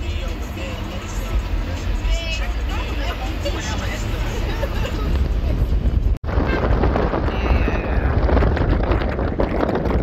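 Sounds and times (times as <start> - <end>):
moving car rumble: 0.0 - 10.0.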